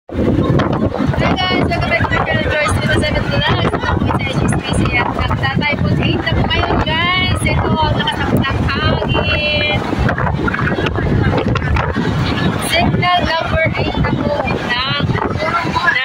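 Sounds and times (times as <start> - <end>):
wind buffeting microphone: 0.1 - 16.0
woman talking: 1.2 - 9.8, 12.6 - 16.0.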